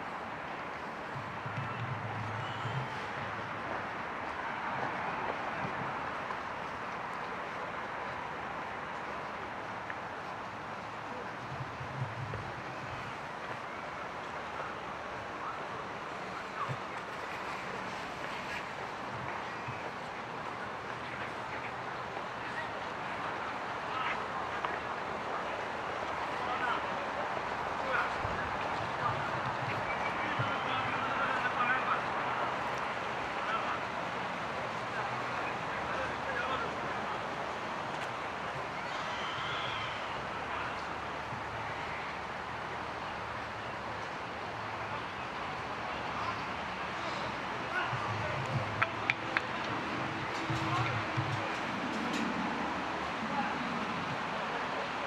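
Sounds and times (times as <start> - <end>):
faint indistinct voices: 0.0 - 55.0.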